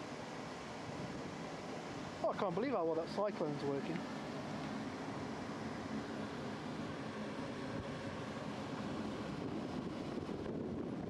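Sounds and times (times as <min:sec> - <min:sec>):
burner flame rushing: 0:03.8 - 0:11.0.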